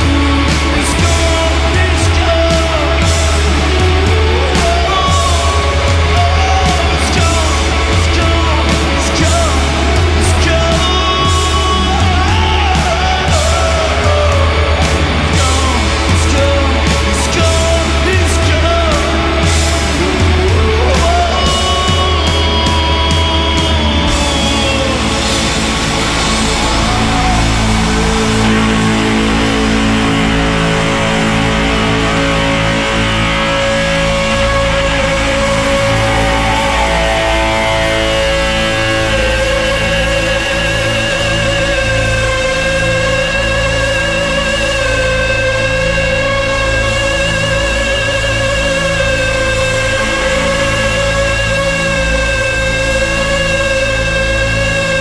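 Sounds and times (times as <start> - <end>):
drums: 0.0 - 55.0
electric guitars sustained chords: 0.0 - 55.0
rock band playing loudly: 0.0 - 55.0.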